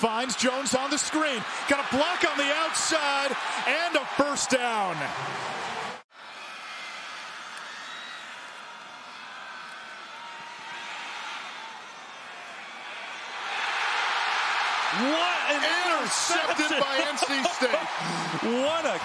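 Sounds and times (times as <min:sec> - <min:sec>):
stadium crowd noise: 0:00.0 - 0:19.0.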